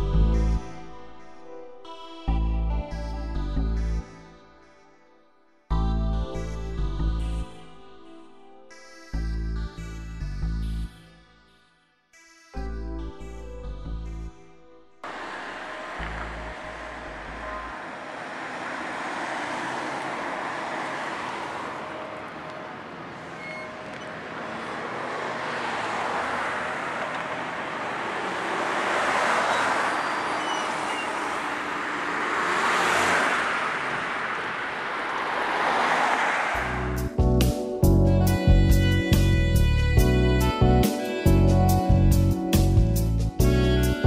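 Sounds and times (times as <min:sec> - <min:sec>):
cars passing: 0:15.0 - 0:37.7.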